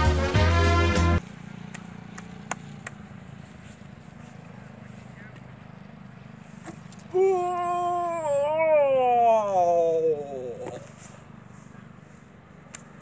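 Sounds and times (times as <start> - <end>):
music: 0.0 - 1.2.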